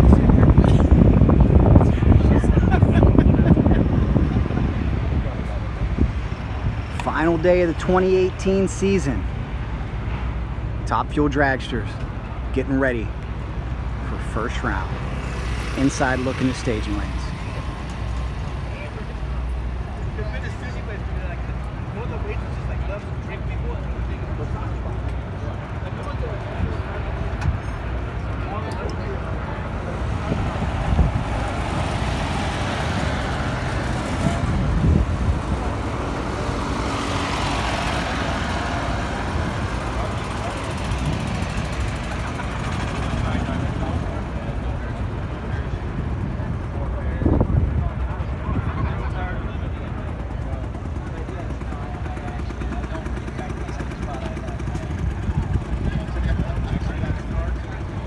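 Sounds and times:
many people talking: 0.0 - 6.1, 15.7 - 31.7, 38.6 - 58.0
low engine rumble: 0.0 - 58.0.

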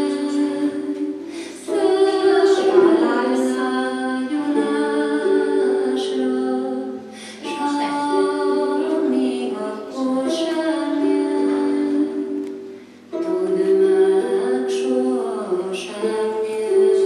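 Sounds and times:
woman and children singing: 0.0 - 12.4, 13.1 - 17.0.

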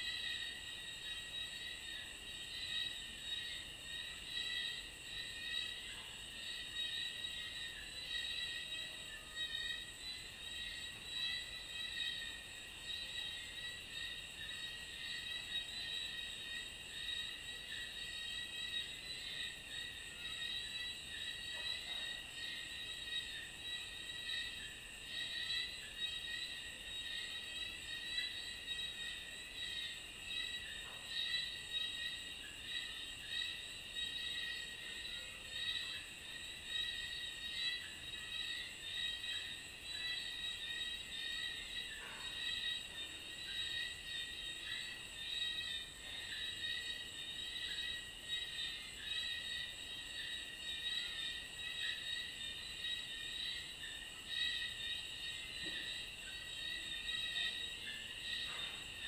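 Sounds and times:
crickets chirring: 0.0 - 59.0.

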